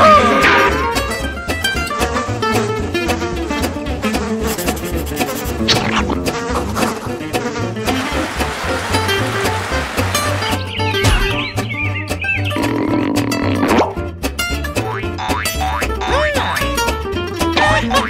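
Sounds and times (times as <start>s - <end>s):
upbeat cartoon music: 0.0s - 18.0s
sliding cartoon sound effects: 4.4s - 9.6s
springy boings: 10.9s - 11.7s.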